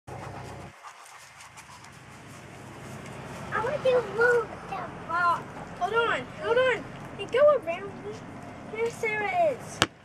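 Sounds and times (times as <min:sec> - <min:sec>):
dog panting softly: 0:00.1 - 0:03.0.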